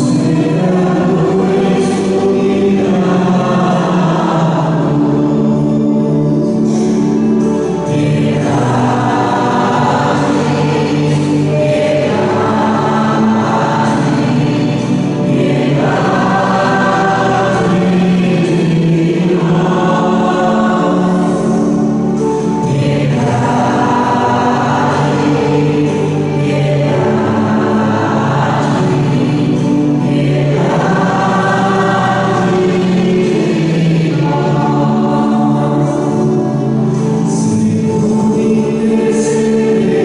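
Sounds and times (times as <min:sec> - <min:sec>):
choir singing a hymn: 0:00.0 - 0:40.0.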